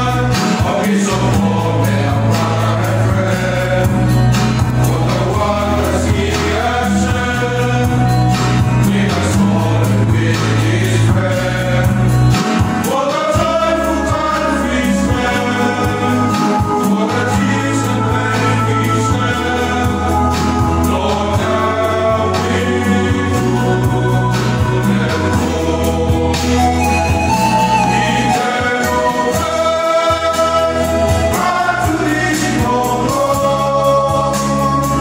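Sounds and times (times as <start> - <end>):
male choir singing a hymn: 0.0 - 35.0
strummed acoustic guitars: 0.0 - 35.0.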